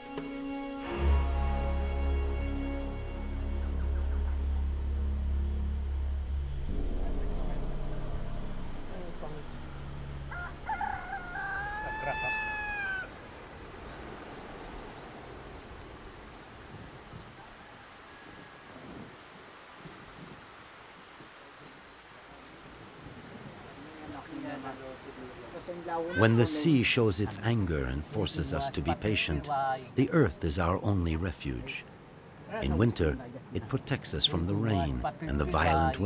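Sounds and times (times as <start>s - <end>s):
low soundtrack music: 0.0s - 11.7s
faint background sound: 0.8s - 20.8s
rooster crowing: 9.4s - 13.4s.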